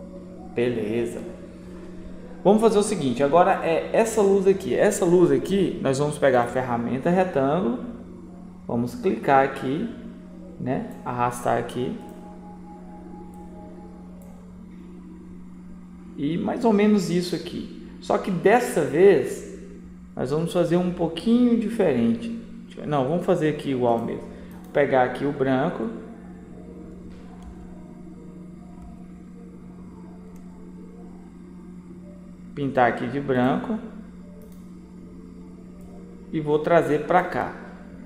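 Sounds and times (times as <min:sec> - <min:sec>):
faint higher tones: 0:00.0 - 0:19.0, 0:22.6 - 0:38.0
low electrical hum: 0:00.0 - 0:38.0.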